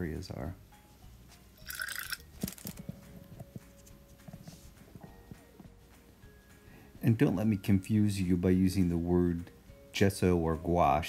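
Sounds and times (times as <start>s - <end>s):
hands rustling: 1.2s - 5.5s
paintbrush brushing: 3.5s - 5.0s.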